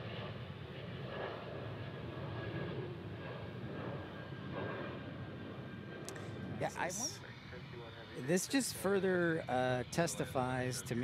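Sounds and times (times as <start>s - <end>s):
jet engines rumbling: 0.0s - 11.0s.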